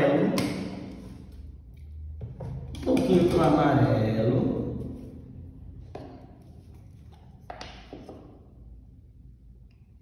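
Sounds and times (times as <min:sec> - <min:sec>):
painting tools tapping and clicking: 0:00.3 - 0:03.8, 0:05.8 - 0:08.5.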